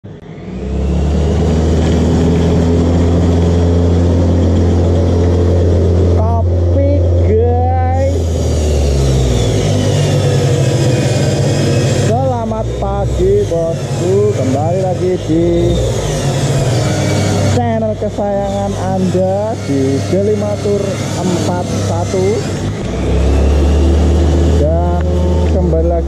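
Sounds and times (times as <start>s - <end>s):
low motor hum: 0.0s - 26.0s
person speaking: 6.0s - 8.5s, 12.0s - 16.6s, 17.2s - 23.0s, 24.4s - 26.0s.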